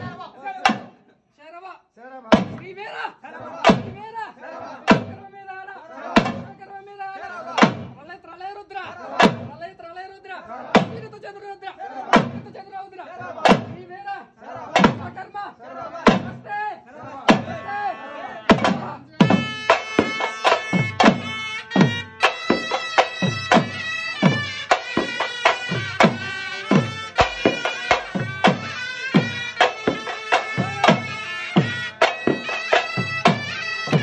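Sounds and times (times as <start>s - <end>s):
voices: 0.0s - 34.0s
hand drum in dance rhythm: 18.5s - 34.0s.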